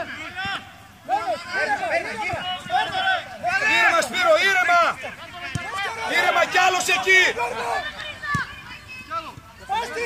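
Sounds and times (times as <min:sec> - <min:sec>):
men shouting: 0:01.0 - 0:07.9.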